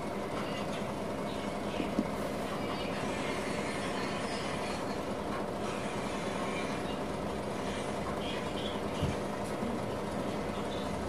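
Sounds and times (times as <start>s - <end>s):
transformer buzzing hum: 0.0s - 11.0s.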